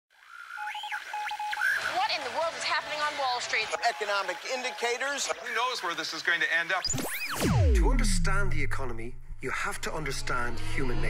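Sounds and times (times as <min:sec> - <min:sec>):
rapid electronic beeps: 0:06.8 - 0:10.7
steady synthetic tones: 0:06.9 - 0:11.0
tone sweeping up and down: 0:06.9 - 0:11.0.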